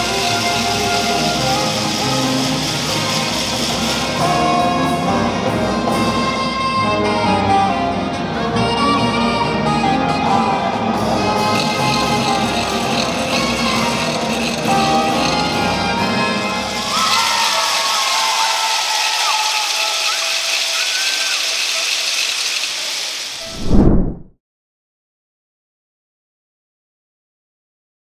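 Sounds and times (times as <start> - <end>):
folk dance music: 0.0 - 22.6
crowd applause and cheering: 0.0 - 23.6
low whoosh: 23.4 - 24.4.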